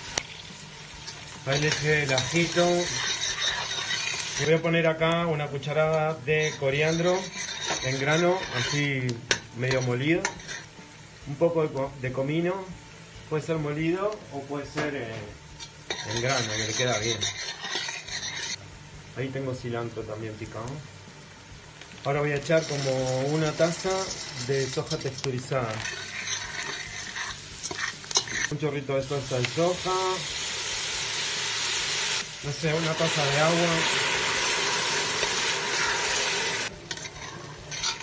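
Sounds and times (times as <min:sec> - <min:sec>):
onion frying in oil: 0:00.0 - 0:38.0
metal spoon scraping a pot: 0:01.0 - 0:04.9, 0:05.6 - 0:10.8, 0:15.5 - 0:18.6, 0:22.4 - 0:28.6, 0:32.9 - 0:38.0.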